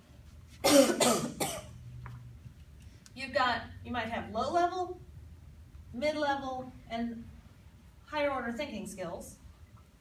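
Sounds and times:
woman coughing: 0:00.6 - 0:01.8.

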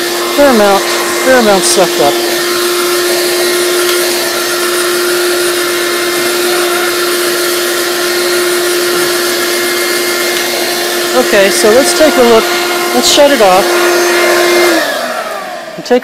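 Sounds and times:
shop vac motor whine: 0:00.0 - 0:16.0.

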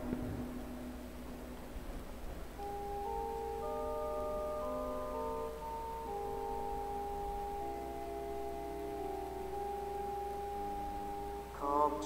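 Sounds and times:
organ playing slow chords: 0:00.0 - 0:12.0.

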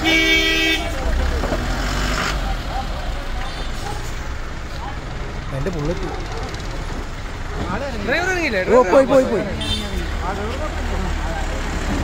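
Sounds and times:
vehicle horn blast: 0:00.0 - 0:01.0, 0:09.6 - 0:10.1
street noise: 0:00.0 - 0:12.0.

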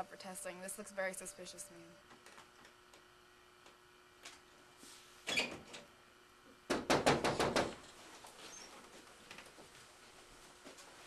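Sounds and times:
knocking on a door: 0:06.7 - 0:07.8.

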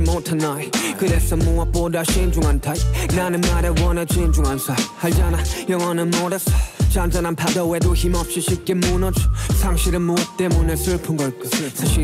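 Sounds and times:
man rapping: 0:00.0 - 0:12.0
slow hip hop beat with bass: 0:00.0 - 0:12.0.

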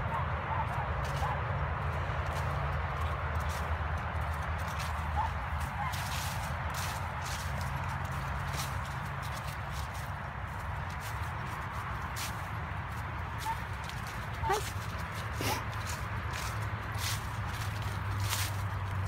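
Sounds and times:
footsteps crunching through leaves: 0:00.6 - 0:19.0.

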